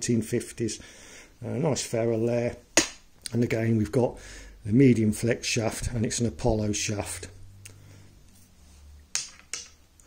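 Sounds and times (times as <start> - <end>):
golf clubs clicking: 9.1 - 10.0.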